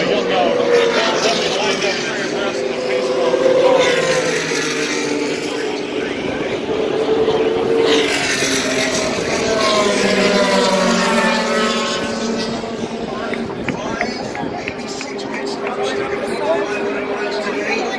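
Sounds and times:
crowd chatter: 0.0s - 17.9s
race car engines passing: 0.0s - 17.9s.

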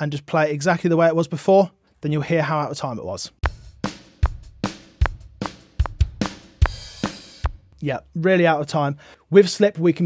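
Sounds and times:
kick and snare drum hits: 3.4s - 7.6s.

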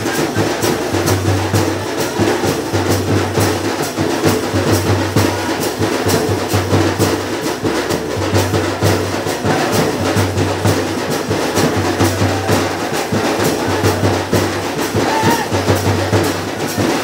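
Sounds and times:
barrel drum beaten fast: 0.0s - 17.0s.

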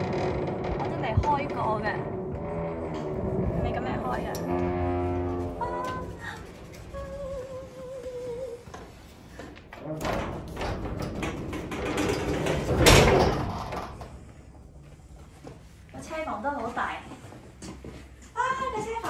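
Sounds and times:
metal garage door swinging open: 0.0s - 7.0s, 9.6s - 14.5s.

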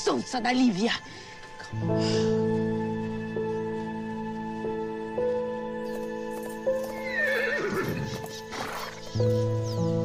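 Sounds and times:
background music with held notes: 0.0s - 10.0s
horse whinnying: 6.9s - 9.1s.

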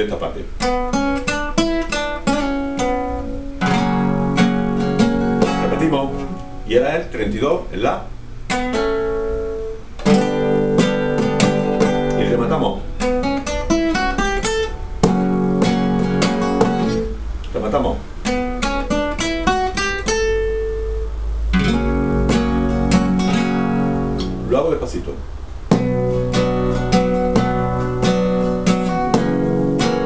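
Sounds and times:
classical guitar playing: 0.4s - 7.2s, 8.1s - 17.4s, 18.0s - 30.0s.

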